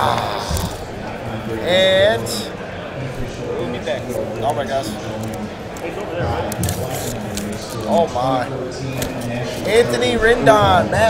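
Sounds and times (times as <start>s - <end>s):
chatter in a large hall: 0.0s - 11.0s.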